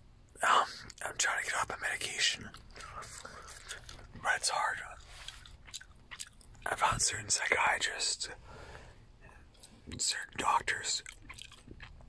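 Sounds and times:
close whispering: 0.4 - 5.4, 6.6 - 8.4, 9.9 - 11.1
gum chewing: 2.4 - 6.7, 9.3 - 12.0.

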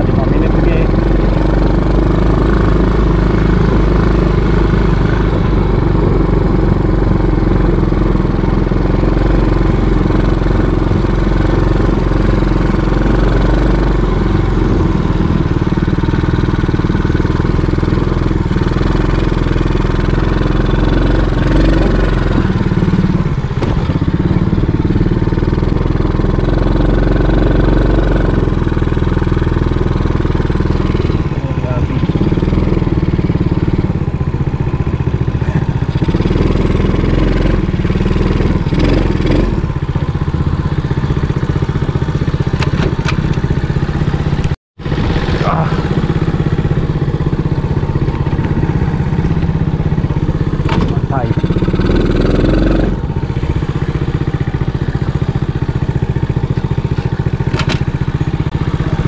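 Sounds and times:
quad bike engine running: 0.0 - 59.0.

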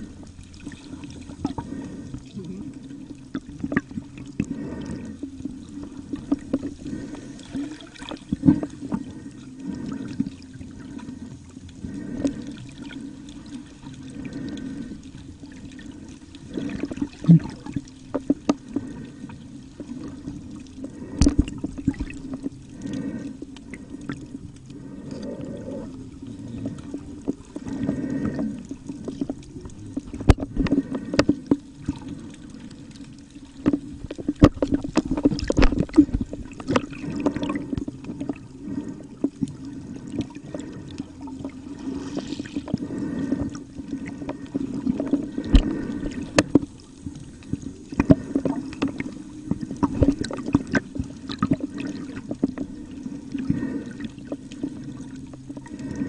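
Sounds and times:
steady low underwater hum: 0.0 - 56.0
crackling clicks: 39.1 - 51.6.

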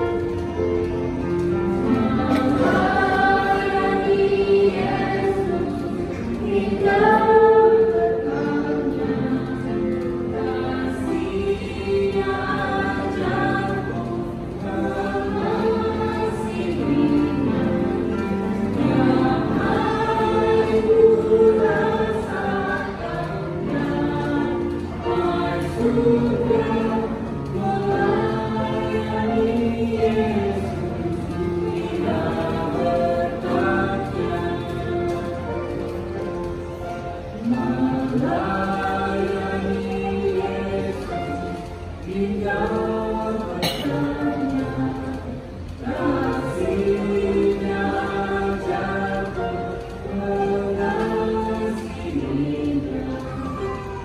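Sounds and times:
group singing: 0.0 - 54.0.

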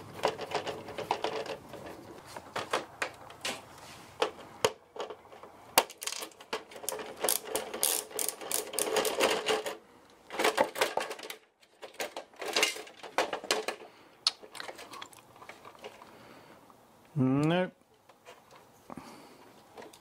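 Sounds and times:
plastic clatter: 0.0 - 16.1.

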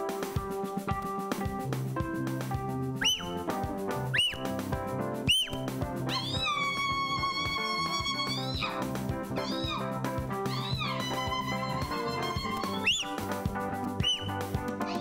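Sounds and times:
keyboard lead with gliding notes: 0.0 - 15.0.

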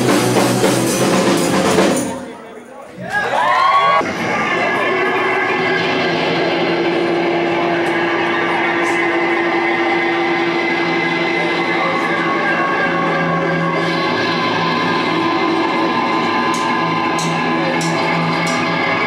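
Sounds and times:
live rock band playing loud: 0.0 - 2.3, 4.0 - 19.0.

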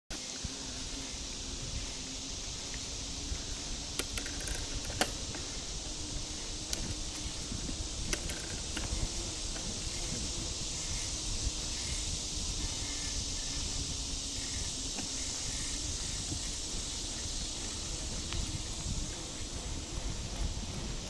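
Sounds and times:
constant high hiss: 0.1 - 21.0
wind buffeting microphone: 0.7 - 21.0
faint ticks: 3.8 - 5.5, 6.3 - 9.9, 16.3 - 19.5.

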